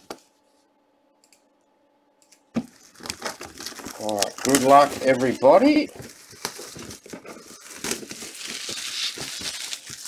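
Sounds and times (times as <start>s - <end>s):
plastic wrap crackling: 2.6s - 10.0s.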